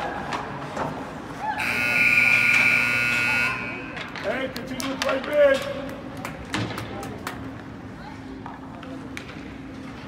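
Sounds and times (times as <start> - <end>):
skate and stick clatter: 0.0 - 1.4, 4.0 - 10.0
scoreboard buzzer blast: 1.6 - 3.9.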